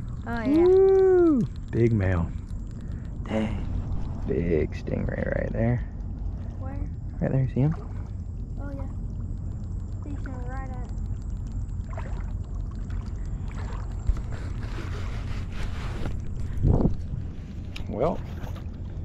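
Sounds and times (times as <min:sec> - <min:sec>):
wind rumbling on microphone: 0:00.0 - 0:19.0
water sloshing around legs: 0:05.5 - 0:19.0.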